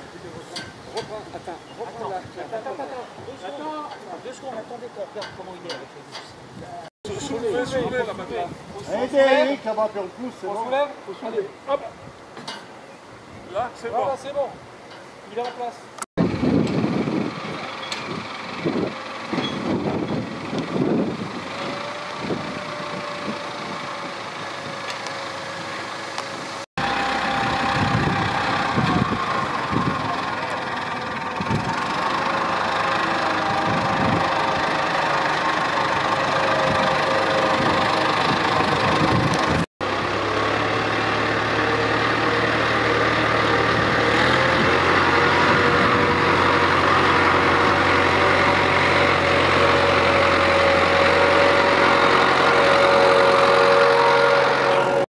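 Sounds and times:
tractor engine running: 16.2s - 55.0s.

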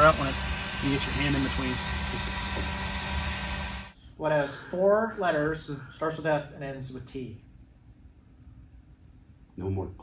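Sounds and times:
heat gun blowing air: 0.0s - 4.0s
low motor hum: 0.0s - 4.0s.

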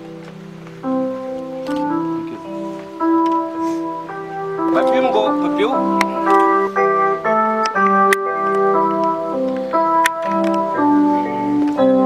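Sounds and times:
electronic organ music: 0.0s - 12.0s.

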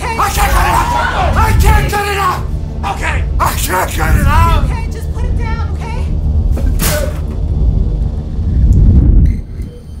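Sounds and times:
deep rumbling drone: 0.0s - 10.0s.

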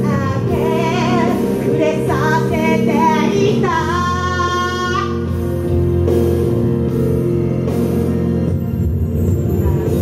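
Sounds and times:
woman singing into a microphone: 0.0s - 5.4s
instrumental accompaniment: 0.0s - 10.0s.

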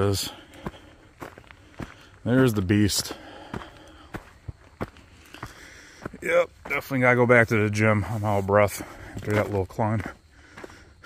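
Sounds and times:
footsteps on gravel and leaves: 0.0s - 11.0s.

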